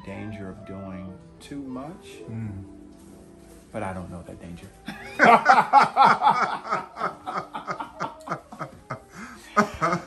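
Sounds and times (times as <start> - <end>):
man chuckling: 4.9 - 10.0.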